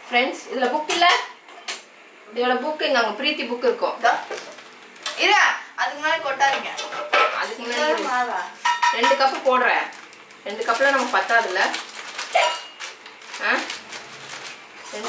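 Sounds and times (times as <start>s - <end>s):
plastic packet clinking against jar: 9.0s - 15.0s.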